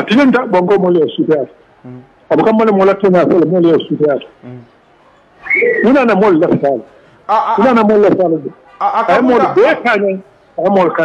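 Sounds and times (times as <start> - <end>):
man speaking: 0.0 - 4.8, 5.8 - 11.0.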